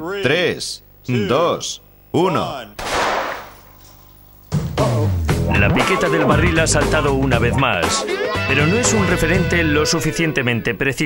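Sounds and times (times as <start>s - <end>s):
pistol shot: 2.8s - 3.7s
background music: 4.6s - 10.8s.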